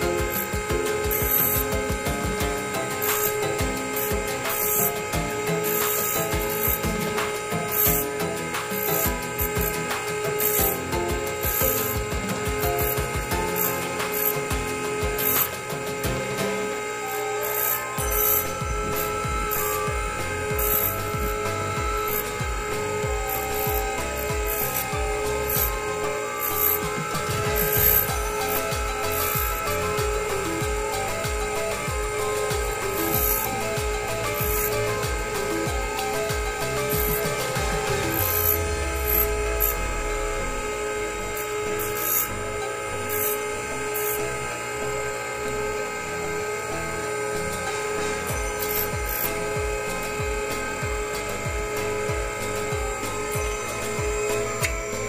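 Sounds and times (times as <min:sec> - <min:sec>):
background music with beat: 0:00.0 - 0:55.0
dental lathe whine: 0:00.0 - 0:55.0.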